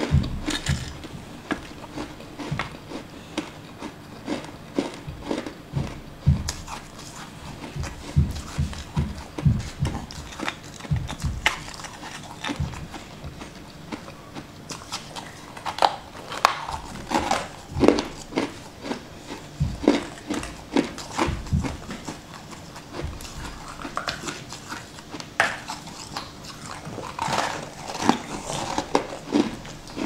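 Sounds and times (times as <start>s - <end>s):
sweet crunching: 0.0s - 30.0s.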